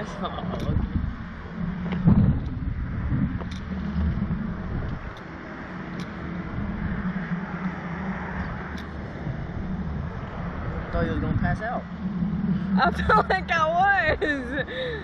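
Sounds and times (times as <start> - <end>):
wind rushing over microphone: 0.0 - 15.0.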